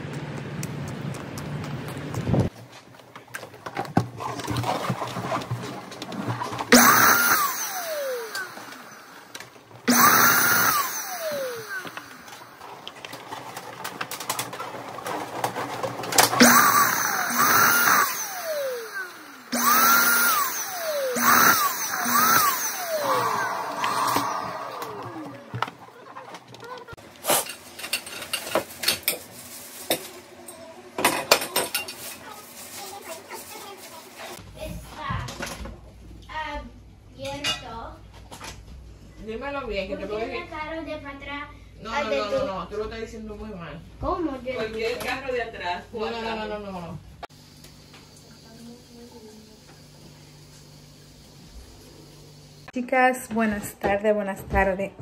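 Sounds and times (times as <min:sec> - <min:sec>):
electric balloon inflator whining: 0:06.6 - 0:13.0, 0:16.2 - 0:26.0.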